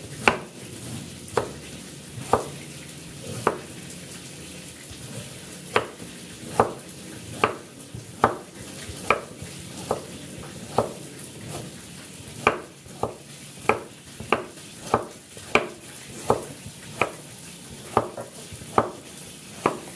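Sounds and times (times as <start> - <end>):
cleaver chopping on a board: 0.2 - 0.5, 1.4 - 1.6, 2.2 - 2.6, 3.4 - 3.7, 5.7 - 6.8, 7.4 - 10.1, 10.7 - 11.0, 12.4 - 17.2, 17.8 - 19.0, 19.6 - 19.9.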